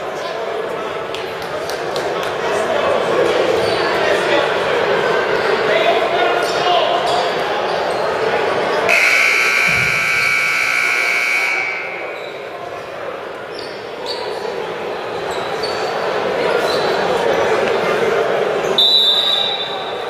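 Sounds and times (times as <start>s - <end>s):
crowd chattering in echoing gym: 0.0s - 20.0s
scoreboard buzzer blast: 8.9s - 12.2s.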